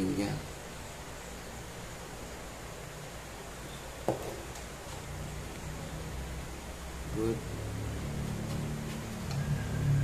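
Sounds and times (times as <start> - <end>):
low steady hum: 0.0 - 10.0
egg tray knock: 4.1 - 4.4.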